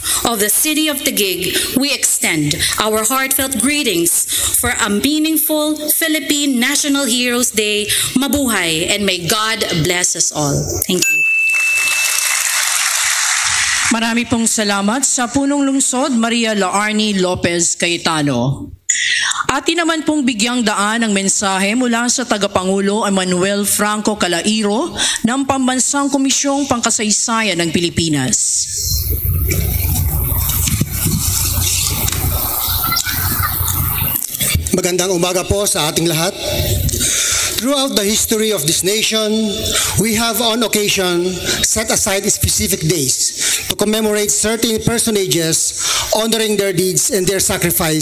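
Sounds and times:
thin high tone: 11.0s - 12.6s
audience applauding: 11.5s - 14.0s
steady low rumble: 28.8s - 35.7s.

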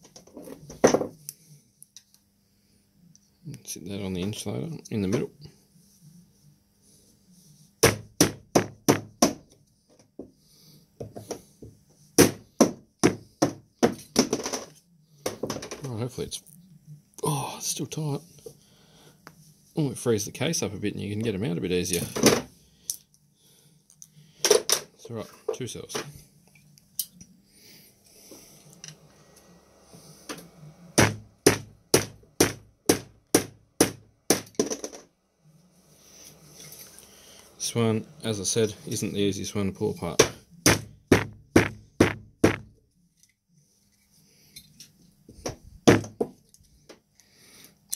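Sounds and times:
sharp knocks on plastic: 40.2s - 42.7s.

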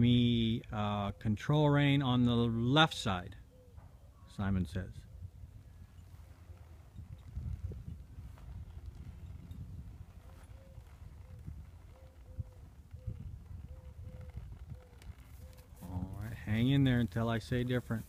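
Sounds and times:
horse hooves thudding on dirt: 6.1s - 17.3s.

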